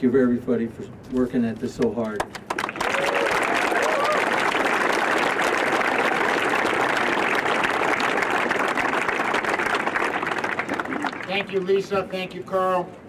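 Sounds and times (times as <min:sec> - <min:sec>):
crowd clapping: 0:01.8 - 0:12.0.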